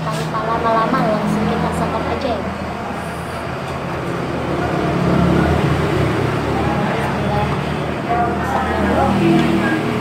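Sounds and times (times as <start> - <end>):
voices talking: 6.0 - 10.0.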